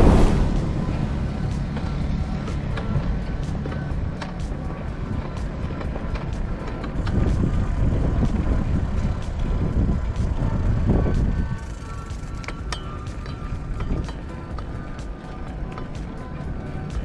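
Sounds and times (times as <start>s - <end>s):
background music: 0.0s - 17.0s
wind rumbling on microphone: 0.0s - 17.0s
bike clicks and rattles: 1.4s - 17.0s.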